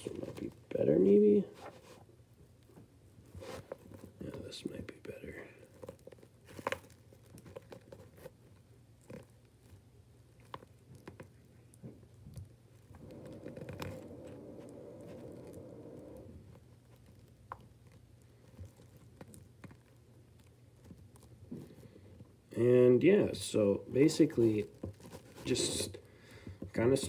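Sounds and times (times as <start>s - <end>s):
plastic toys rustling: 3.2s - 22.4s, 24.0s - 27.0s.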